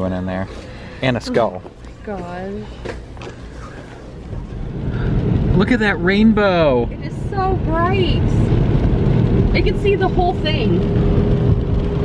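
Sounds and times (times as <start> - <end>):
car rumble from inside cabin: 1.4 - 12.0.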